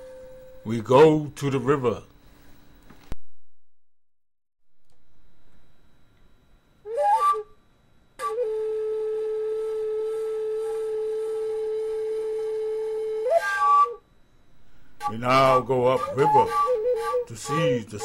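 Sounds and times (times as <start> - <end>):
flute playing: 6.9 - 7.6, 8.2 - 14.0, 15.0 - 18.0.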